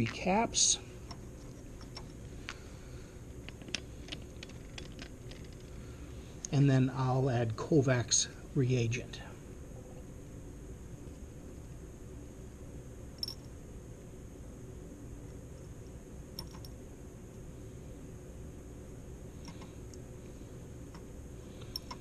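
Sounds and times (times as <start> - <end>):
fan humming: 0.0 - 22.0.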